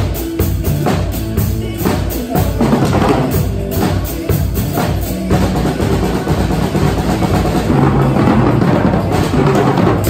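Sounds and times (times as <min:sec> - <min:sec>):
drum kits playing: 0:00.0 - 0:10.0
pop song backing track: 0:00.0 - 0:10.0
steady bass line: 0:00.0 - 0:10.0.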